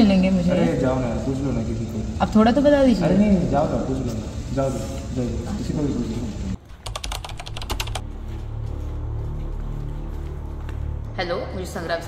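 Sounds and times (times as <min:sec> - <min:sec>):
computer keyboard typing: 0:06.7 - 0:08.0
low music drone: 0:07.6 - 0:12.0.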